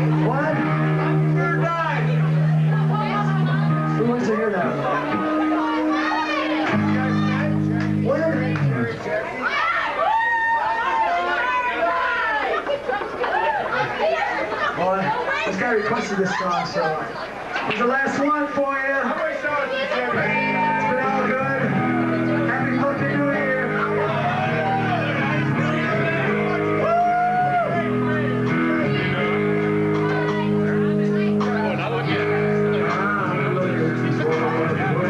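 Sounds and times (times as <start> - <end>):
live rock band playing: 0.0 - 9.0, 20.1 - 35.0
people talking over one another: 0.0 - 35.0.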